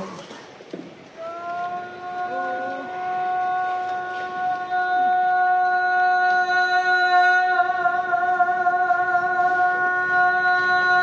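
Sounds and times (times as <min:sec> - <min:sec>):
man chanting a long note: 0:01.2 - 0:11.0.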